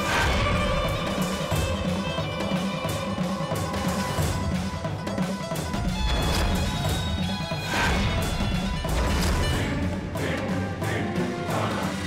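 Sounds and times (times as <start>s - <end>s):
dramatic score with throbbing low end: 5.7s - 12.0s.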